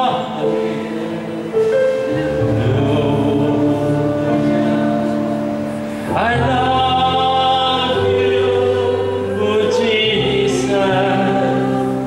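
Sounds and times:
electronic keyboard sustained chords: 0.0 - 12.0
group singing: 0.0 - 12.0.

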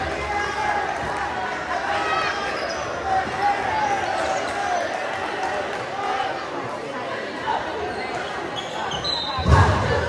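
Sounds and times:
spectators chattering: 0.0 - 10.0
sneakers squeaking: 2.2 - 4.5, 7.8 - 10.0.

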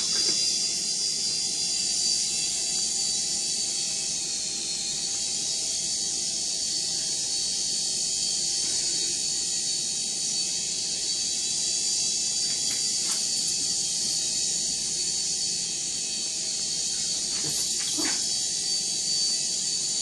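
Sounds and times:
drone propellers buzzing: 3.6 - 19.9.

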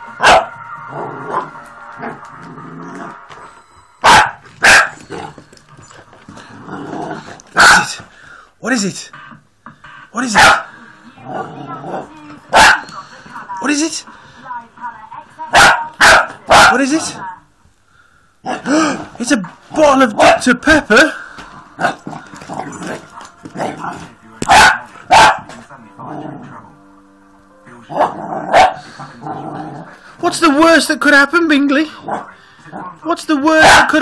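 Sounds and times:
puppy barking: 0.2 - 0.6, 4.0 - 5.2, 7.6 - 8.0, 10.3 - 10.7, 12.5 - 12.9, 15.5 - 17.1, 20.1 - 20.5, 24.4 - 25.6, 27.9 - 28.9, 33.6 - 34.0.

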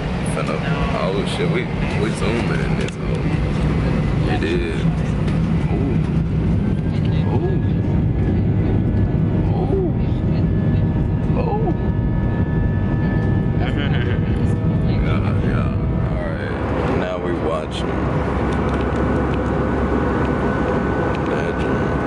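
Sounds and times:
jet engines roaring: 0.0 - 22.0.

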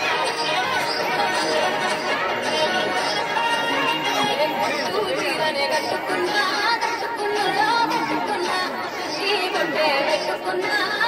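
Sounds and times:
crowd of children chattering: 0.0 - 11.0.

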